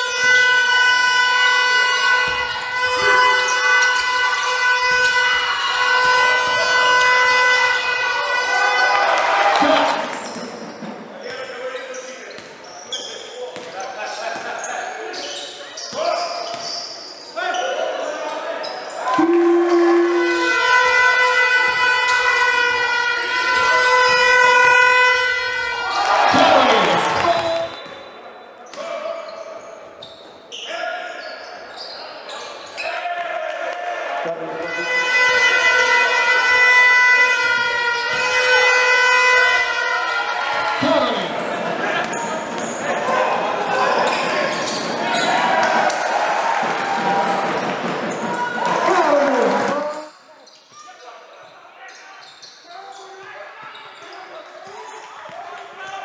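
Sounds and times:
steady horn-like tone: 0:00.2 - 0:08.6, 0:34.6 - 0:39.8.

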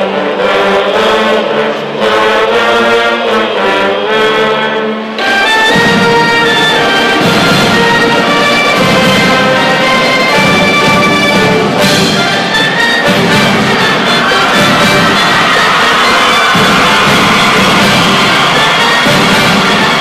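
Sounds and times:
marching band brass playing: 0:00.0 - 0:20.0.

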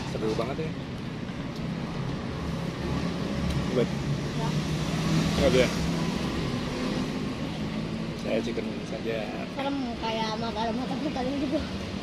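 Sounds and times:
road traffic rumble: 0:00.0 - 0:12.0
vehicle passing: 0:00.0 - 0:12.0.

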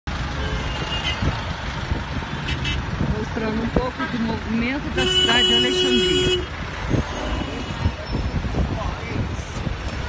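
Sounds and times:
traffic engines and tyres rumbling: 0:00.1 - 0:10.0.

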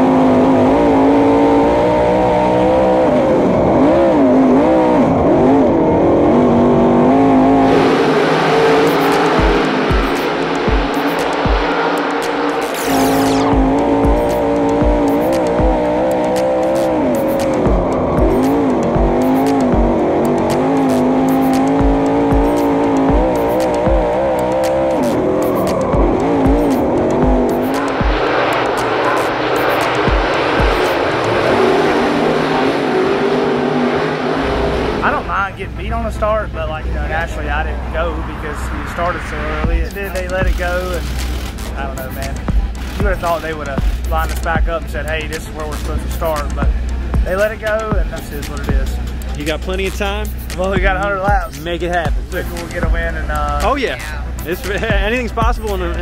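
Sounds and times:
race car engines revving: 0:00.0 - 0:56.0
music with steady beat: 0:07.8 - 0:31.8, 0:39.6 - 0:56.0.

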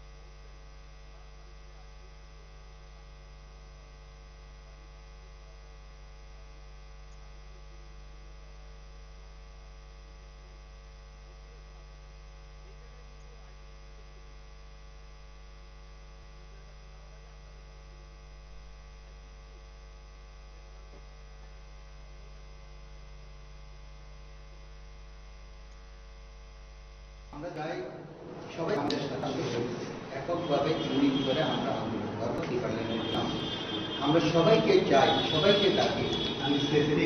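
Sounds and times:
electrical mains hum: 0:00.0 - 0:37.0.

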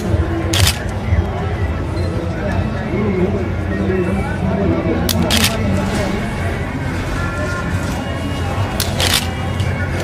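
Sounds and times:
camera shutter click: 0:05.1 - 0:05.6, 0:08.8 - 0:09.3
camera shutter burst: 0:08.8 - 0:09.4.

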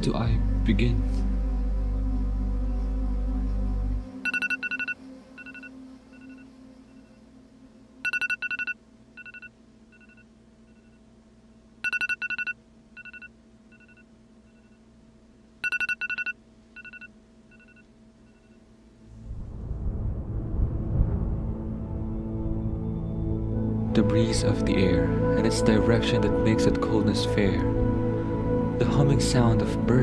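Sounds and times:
faint low hum: 0:00.0 - 0:30.0
smartphone alarm beeps: 0:04.2 - 0:06.4, 0:08.0 - 0:11.0, 0:11.8 - 0:14.8, 0:15.6 - 0:18.6.

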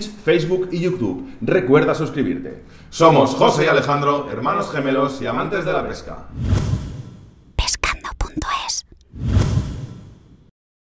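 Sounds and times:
whoosh: 0:06.3 - 0:07.4, 0:09.1 - 0:10.5
breathy whisper-like bursts: 0:07.6 - 0:09.0.

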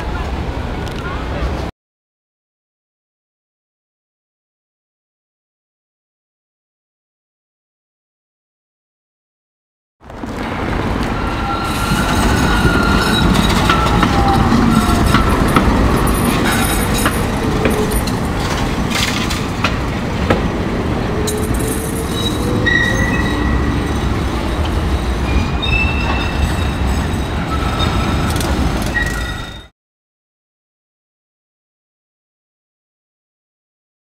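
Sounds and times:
tram rumbling on rails: 0:00.0 - 0:01.7, 0:10.0 - 0:29.7
high wheel squeals: 0:10.8 - 0:18.6, 0:21.0 - 0:29.7
sharp clicks of rails: 0:14.8 - 0:20.5.

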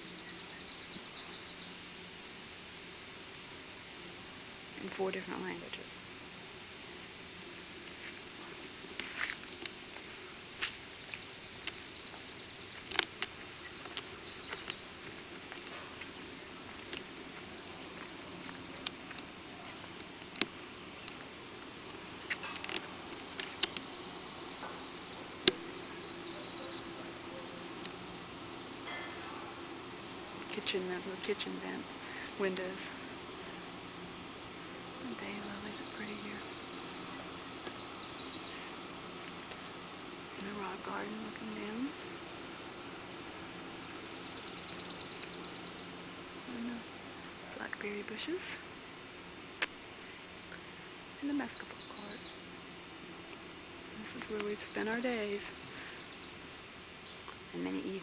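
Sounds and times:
bird calling: 0:00.0 - 0:01.8, 0:11.0 - 0:14.9, 0:22.2 - 0:27.8, 0:35.2 - 0:38.8
songbird twittering: 0:00.0 - 0:01.8, 0:11.0 - 0:14.9, 0:23.3 - 0:27.5, 0:35.2 - 0:38.7, 0:43.7 - 0:45.9, 0:50.4 - 0:52.4, 0:54.1 - 0:56.4
faint outdoor hiss: 0:00.0 - 0:58.0.

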